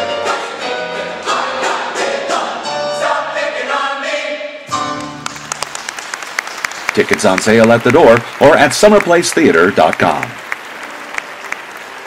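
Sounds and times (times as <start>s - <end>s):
mixed chorus singing in harmony: 0.0s - 4.7s.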